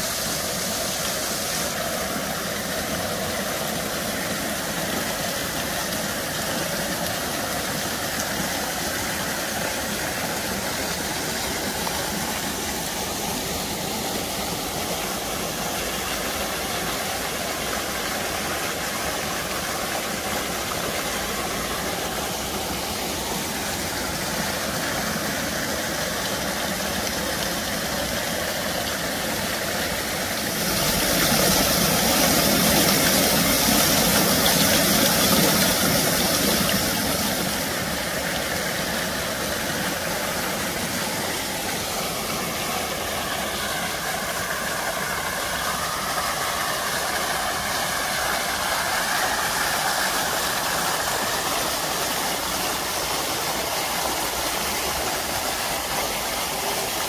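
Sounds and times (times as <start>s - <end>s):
fountain water splashing: 0.0s - 57.0s.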